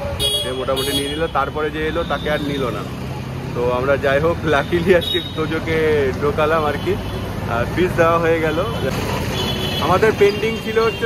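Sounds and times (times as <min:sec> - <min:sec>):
street traffic hum: 0:00.0 - 0:11.0
voices talking: 0:00.0 - 0:11.0.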